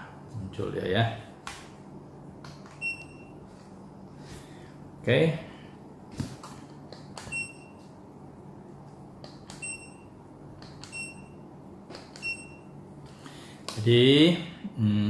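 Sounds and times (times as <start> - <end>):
short high-pitched beeps: 7.3 - 7.8, 9.6 - 10.2, 10.9 - 11.4, 12.2 - 12.7.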